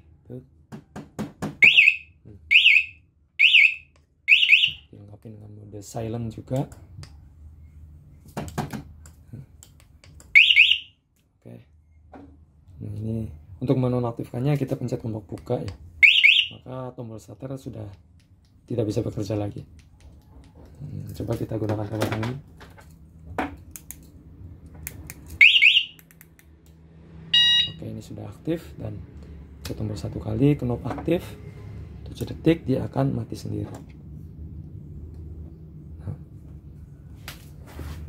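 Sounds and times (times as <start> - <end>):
alarm siren rising chirps: 1.6 - 4.9, 10.4 - 11.0, 16.0 - 16.7, 25.4 - 26.0, 27.2 - 27.8
low steady hum: 1.6 - 38.0.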